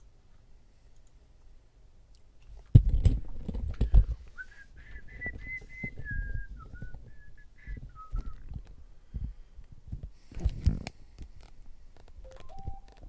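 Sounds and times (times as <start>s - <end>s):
person whistling a tune: 4.4s - 8.4s.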